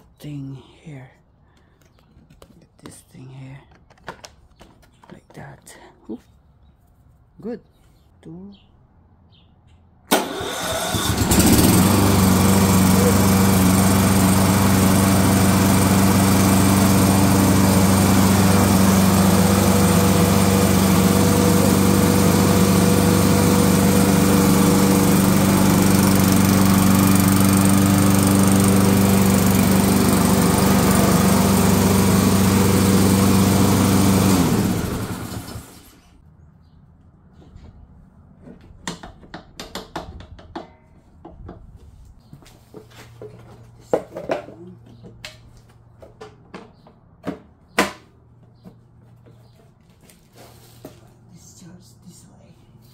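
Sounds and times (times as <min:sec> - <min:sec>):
engine winding down: 0:10.1 - 0:36.2
lawn mower engine running: 0:10.1 - 0:36.2.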